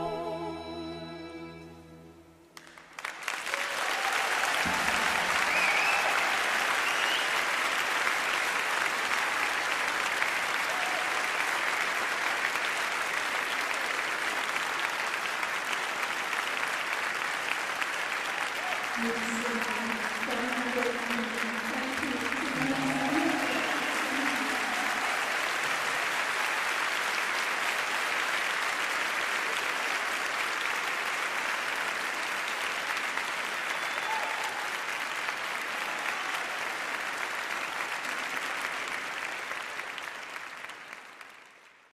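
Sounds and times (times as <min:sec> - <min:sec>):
audience applauding: 0:02.6 - 0:41.9.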